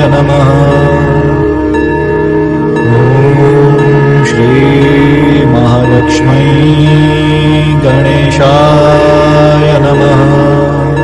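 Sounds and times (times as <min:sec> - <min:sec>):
low drone: 0:00.0 - 0:11.0
slow chanted melody: 0:00.0 - 0:11.0.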